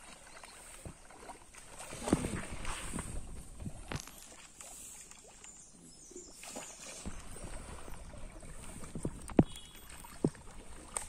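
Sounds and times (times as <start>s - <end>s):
water sloshing and splashing: 0.0s - 11.0s.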